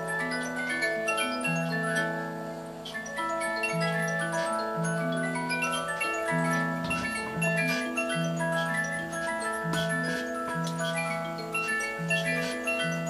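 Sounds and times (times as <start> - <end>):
clockwork ticking: 0.0 - 13.0
music box tune: 0.0 - 13.0.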